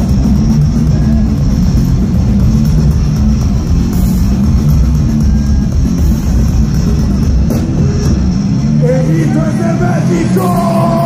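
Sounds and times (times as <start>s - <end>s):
live metal band playing: 0.0s - 11.0s.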